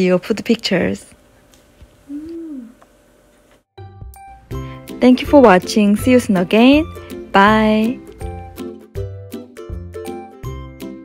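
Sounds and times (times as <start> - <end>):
woman humming: 2.0 - 2.9.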